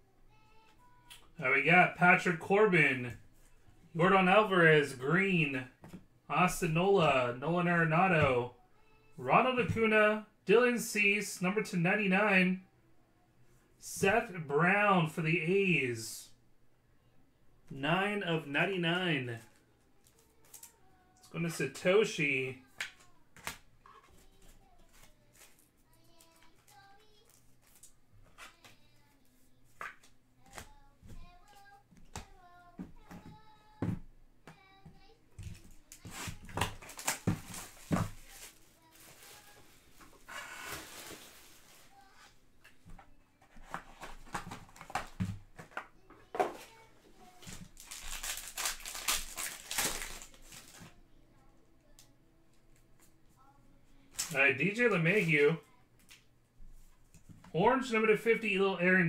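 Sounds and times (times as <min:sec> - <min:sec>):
crinkly packaging rustling: 0:19.4 - 0:20.8, 0:22.6 - 0:29.1, 0:35.4 - 0:42.4, 0:46.5 - 0:51.0.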